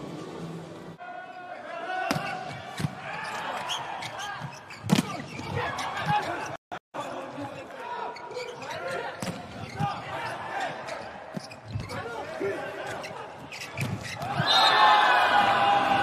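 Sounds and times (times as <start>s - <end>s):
voices and chatter in hall: 0.0s - 16.0s.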